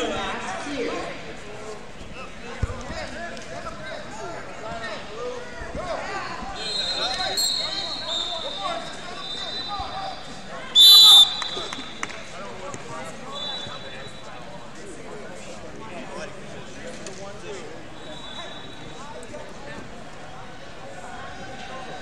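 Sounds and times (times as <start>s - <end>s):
babble of many voices: 0.0s - 22.0s
referee whistle blast: 6.6s - 9.9s, 10.8s - 11.9s
faint whistle tones: 6.6s - 10.0s, 10.7s - 12.0s, 13.3s - 14.3s, 18.0s - 19.0s.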